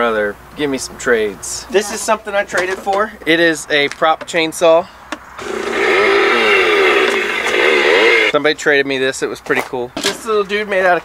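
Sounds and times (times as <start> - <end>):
recorded chainsaw engine revving: 5.4 - 8.3.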